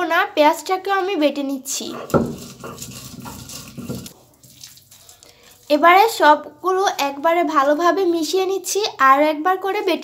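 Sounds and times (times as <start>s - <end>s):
stone pestle grinding wet paste: 1.9s - 4.6s.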